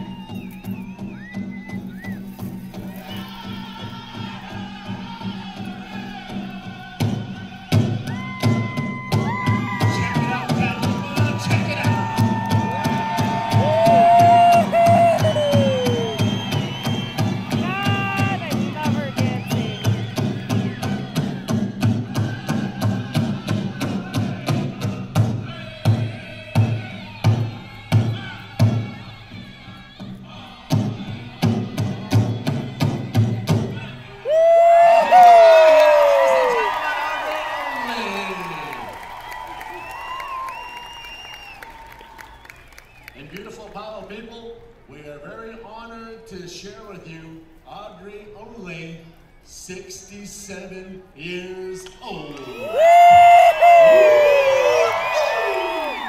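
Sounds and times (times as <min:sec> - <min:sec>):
singers' voices: 0:02.8 - 0:39.0, 0:52.0 - 0:56.0
high-pitched group singing: 0:03.0 - 0:08.2
big drum beating: 0:07.0 - 0:28.9.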